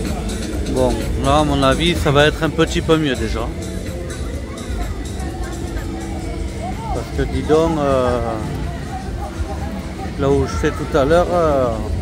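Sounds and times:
crowd voices: 0.0s - 12.0s
funfair ride music: 0.0s - 12.0s.

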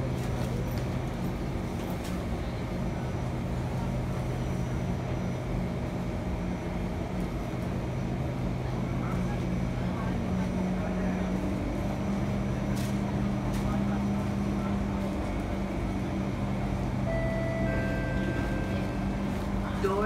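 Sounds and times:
train equipment humming: 0.0s - 20.0s
faint voices: 8.2s - 20.0s.

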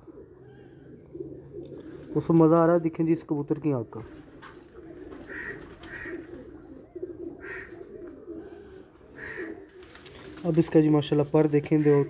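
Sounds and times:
pigeons cooing: 0.0s - 2.6s, 3.9s - 10.8s.

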